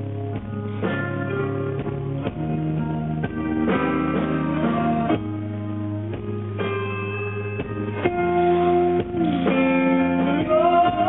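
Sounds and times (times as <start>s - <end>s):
bass guitar: 0.0s - 11.0s
electric guitar chords: 0.0s - 11.0s.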